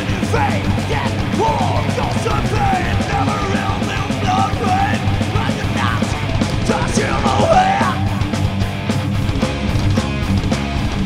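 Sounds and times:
distorted electric guitars: 0.0 - 11.0
fast drumming: 0.0 - 11.0.

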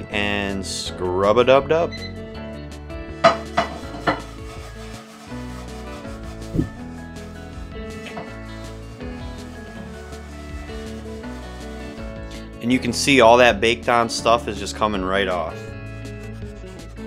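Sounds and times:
background music: 0.0 - 17.0
salt scrubbing in iron skillet: 3.2 - 12.2.

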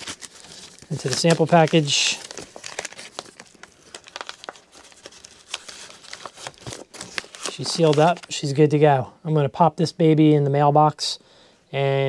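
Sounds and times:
paper bag crinkling: 0.0 - 8.4.

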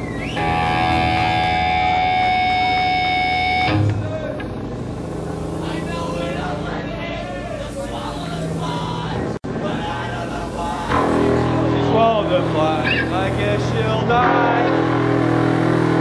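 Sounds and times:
electric guitar drone: 0.0 - 5.6, 10.9 - 16.0
live gig room noise: 0.0 - 16.0
voices talking: 3.2 - 15.1.

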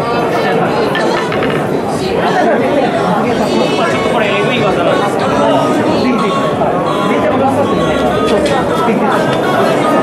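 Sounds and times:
crowd chatter in a hall: 0.0 - 10.0.

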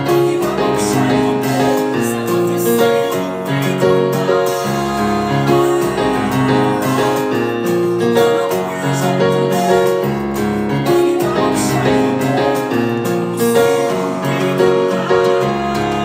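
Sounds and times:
piano chords over bass notes: 0.0 - 16.0.

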